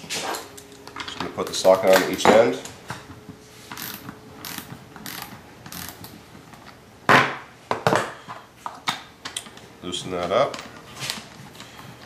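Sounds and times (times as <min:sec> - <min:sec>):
ratchet wrench clicking: 0:03.7 - 0:06.1.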